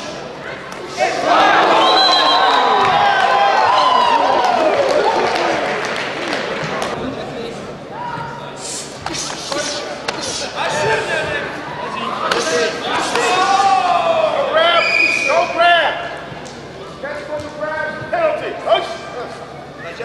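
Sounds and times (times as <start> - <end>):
men shouting: 10.3 - 14.8.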